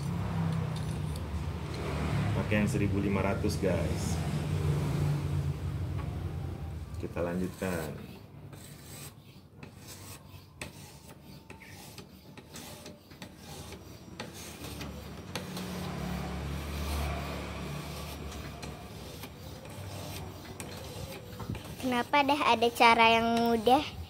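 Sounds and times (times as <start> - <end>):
sharpening stone rasping on steel: 7.2 - 24.0.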